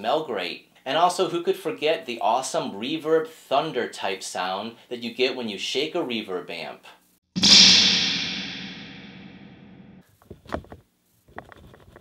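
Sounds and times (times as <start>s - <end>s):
spring reverb metallic crash: 7.4s - 10.0s.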